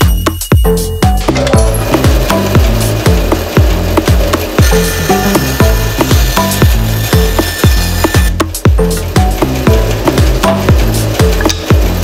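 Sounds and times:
music with thumping beat: 0.0s - 12.0s
bandsaw cutting wood: 1.8s - 8.6s.

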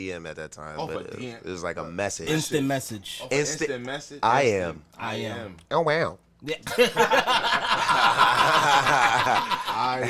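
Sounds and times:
men talking: 0.0s - 10.0s
men laughing: 6.6s - 10.0s.

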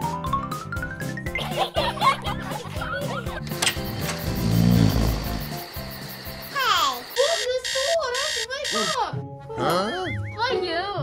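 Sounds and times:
background music: 0.0s - 11.0s
pulsing alarm-like buzz: 3.5s - 9.0s
cartoon snore-like sound: 3.9s - 5.6s.

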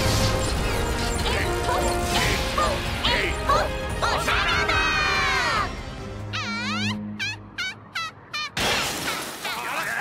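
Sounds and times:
high-pitched bird-like calls: 6.3s - 8.6s.

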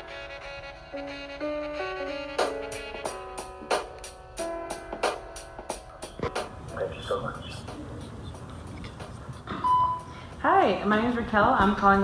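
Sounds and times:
voicemail beep: 9.5s - 10.2s
phone line hiss: 9.5s - 10.3s.

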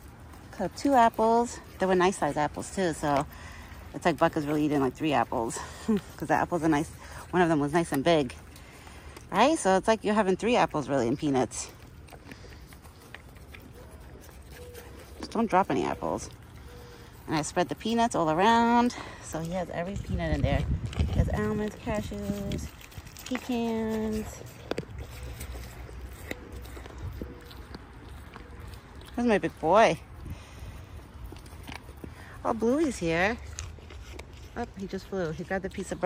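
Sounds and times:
deer chewing crunchy food: 0.0s - 36.0s.

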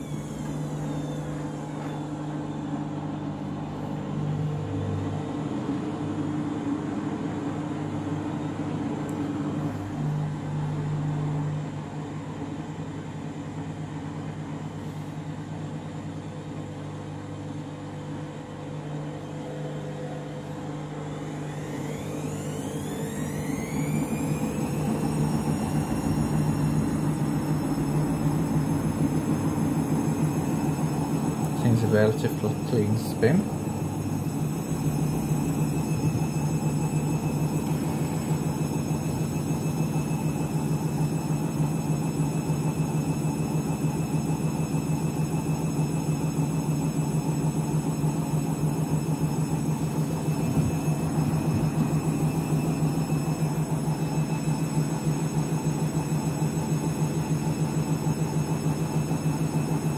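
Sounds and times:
drum motor whine: 0.0s - 59.9s
washing machine hum: 0.0s - 59.9s.

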